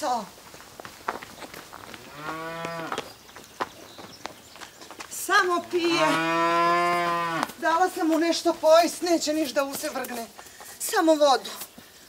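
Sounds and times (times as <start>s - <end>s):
cow mooing: 2.0s - 3.0s, 5.9s - 7.5s.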